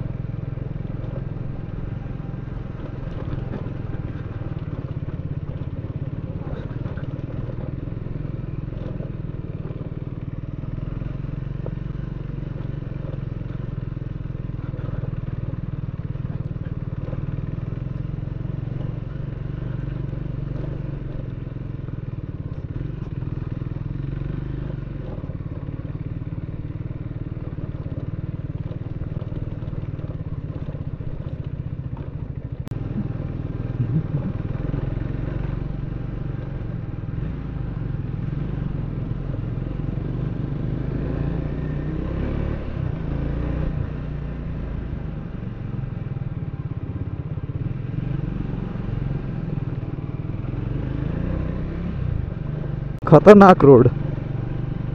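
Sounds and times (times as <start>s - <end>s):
motorcycle engine at low revs: 0.0s - 54.9s.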